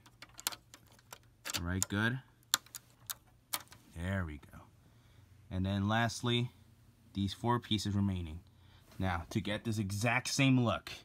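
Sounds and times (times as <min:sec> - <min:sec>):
plastic bricks clicking: 0:00.0 - 0:03.8.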